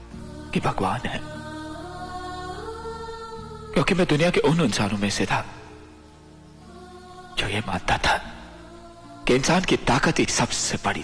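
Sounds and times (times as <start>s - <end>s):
soft sustained film score chord: 0.0s - 11.0s.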